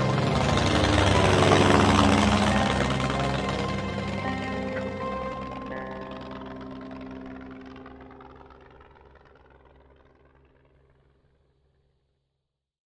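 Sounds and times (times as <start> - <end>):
held musical chord: 0.0 - 9.1
propeller aircraft engine drone: 0.0 - 11.9.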